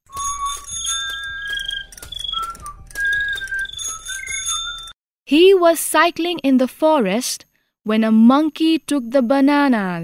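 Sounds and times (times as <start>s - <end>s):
high whistling tones: 0.0s - 5.0s
small ticks: 1.0s - 4.8s.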